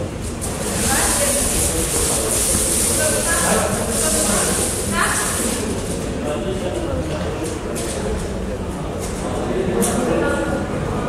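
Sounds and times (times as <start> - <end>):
steady hiss: 0.2 - 5.8.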